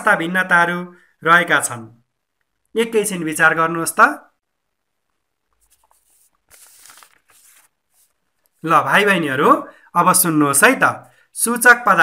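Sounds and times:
person speaking: 0:05.6 - 0:12.0.

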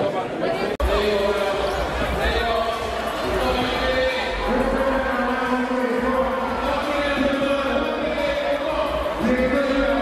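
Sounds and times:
arena crowd rumble and voices: 0:00.0 - 0:10.0.

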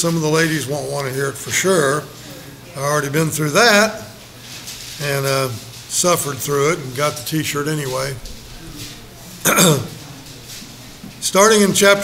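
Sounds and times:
man clearing his throat: 0:09.4 - 0:10.0.

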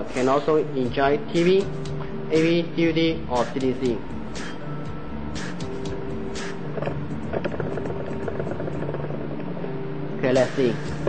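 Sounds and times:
music with held notes: 0:00.0 - 0:11.0.

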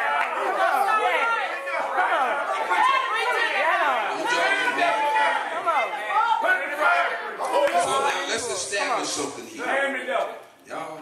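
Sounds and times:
overlapping voices: 0:00.0 - 0:11.0
man talking: 0:07.4 - 0:11.0.

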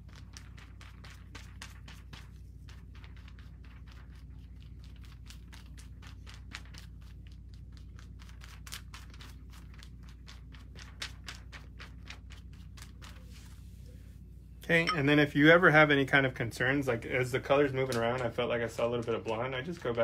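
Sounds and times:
low steady hum: 0:00.0 - 0:20.0.

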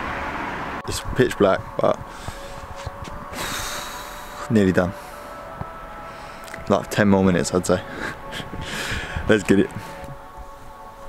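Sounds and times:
man blowing out breath: 0:03.3 - 0:05.5, 0:07.9 - 0:09.3.

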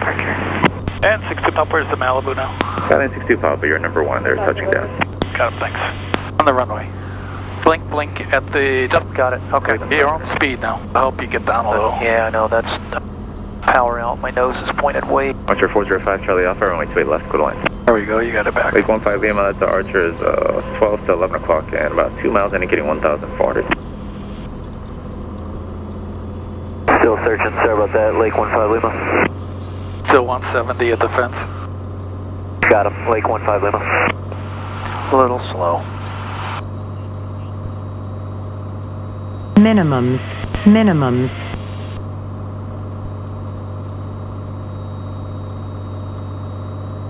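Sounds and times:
propeller plane engine drone: 0:00.0 - 0:47.0.

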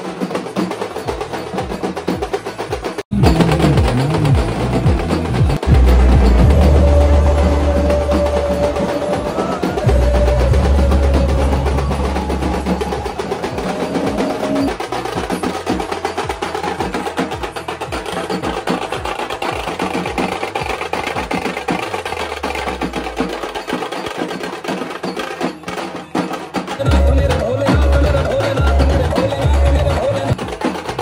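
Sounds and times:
loud music with fast drumming: 0:00.0 - 0:31.0
deep bass: 0:03.1 - 0:08.8.

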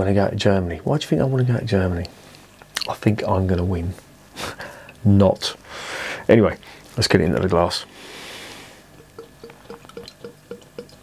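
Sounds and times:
beer pouring into glass: 0:08.9 - 0:11.0
bottle neck glugging: 0:09.0 - 0:11.0.

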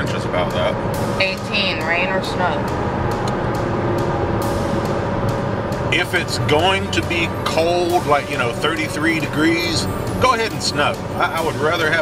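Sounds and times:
car cabin road and engine drone: 0:00.0 - 0:12.0.

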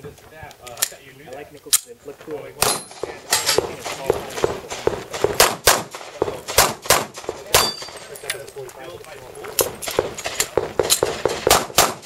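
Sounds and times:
handgun shots: 0:02.6 - 0:08.0, 0:09.6 - 0:12.0.

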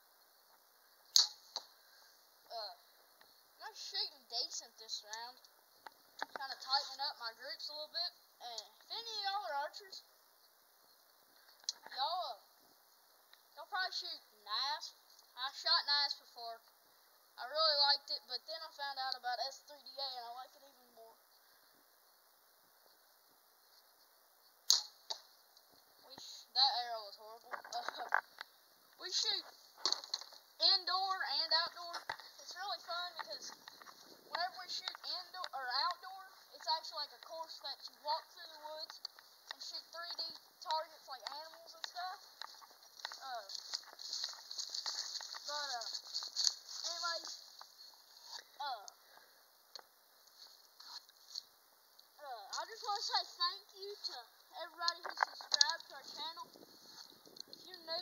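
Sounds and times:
sharp click: 0:01.1 - 0:01.7, 0:24.7 - 0:25.3
boy talking: 0:02.5 - 0:02.8, 0:03.6 - 0:05.4, 0:06.3 - 0:10.0, 0:11.8 - 0:12.4, 0:13.6 - 0:16.6, 0:17.4 - 0:21.2, 0:26.0 - 0:28.2, 0:29.0 - 0:29.6, 0:30.6 - 0:33.6, 0:34.3 - 0:42.4, 0:43.0 - 0:43.7, 0:45.2 - 0:46.0, 0:46.8 - 0:47.5, 0:48.3 - 0:49.0, 0:52.2 - 0:56.5, 0:57.6 - 0:58.0.

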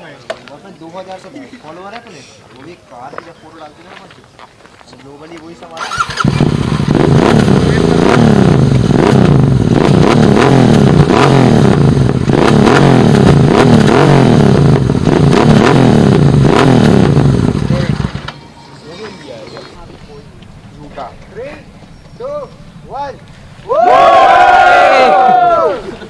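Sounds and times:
motorcycle engine revving: 0:05.8 - 0:18.3, 0:19.8 - 0:26.0.

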